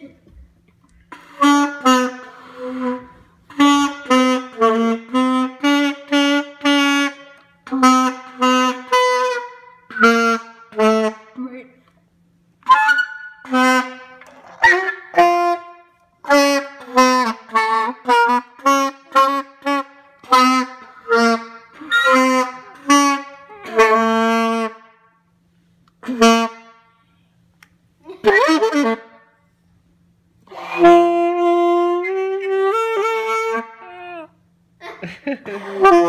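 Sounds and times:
saxophone playing slow tune: 1.0s - 11.4s, 12.6s - 25.3s, 26.0s - 27.1s, 28.3s - 29.2s, 30.4s - 34.7s, 35.5s - 36.0s.

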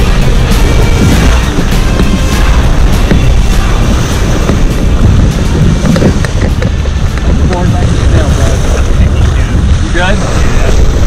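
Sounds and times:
water splashing along boat hull: 0.0s - 11.0s
wind buffeting microphone: 0.0s - 11.0s.

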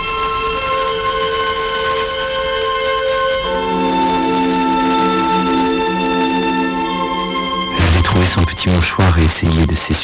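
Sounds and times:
held chord music on radio: 7.7s - 10.0s.

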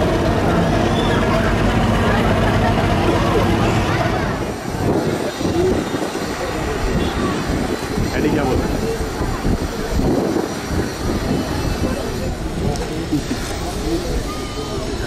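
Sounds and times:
diesel engine humming: 0.0s - 5.5s
voices: 0.0s - 15.0s.

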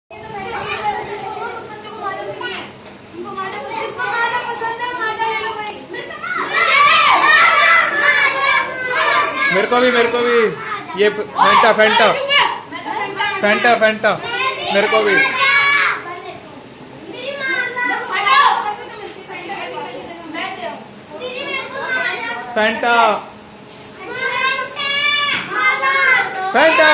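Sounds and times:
young children chattering: 0.1s - 26.9s.

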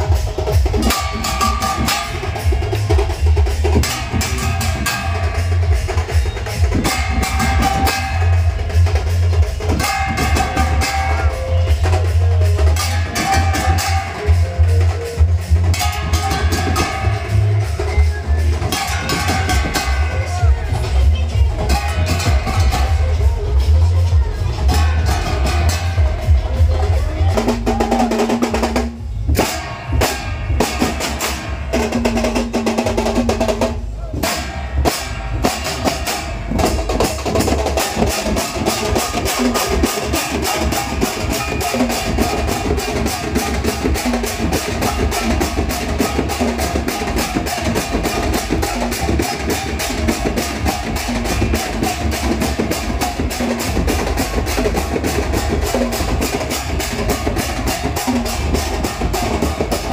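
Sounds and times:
drums beating: 0.0s - 59.9s
gongs struck with sticks: 0.8s - 2.9s, 3.7s - 5.9s, 6.7s - 8.9s, 9.6s - 11.8s, 12.7s - 14.8s, 15.7s - 17.8s, 18.7s - 20.5s, 27.6s - 33.3s, 34.2s - 59.9s.

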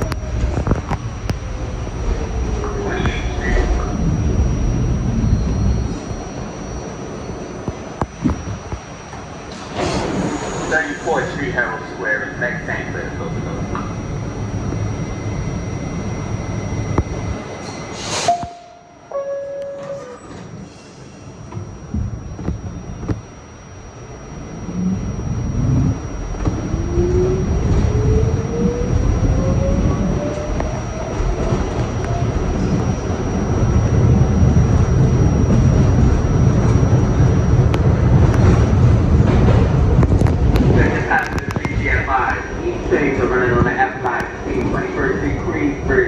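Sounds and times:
rumble of wheels on rails: 0.0s - 46.0s
subway motors whining: 0.0s - 46.0s.

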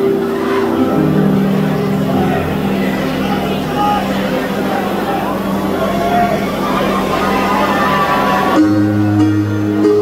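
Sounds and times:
audience voices: 0.0s - 10.0s
live rock band playing: 0.0s - 10.0s.

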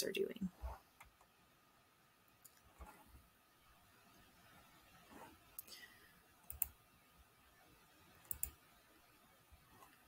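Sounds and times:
computer mouse clicking: 6.4s - 6.8s, 8.2s - 8.6s.

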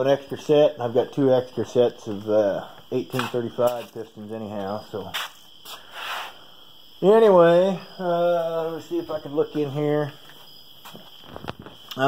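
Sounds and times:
faint high steady tone: 0.0s - 5.1s, 6.4s - 12.0s
low steady background noise: 0.0s - 12.0s.

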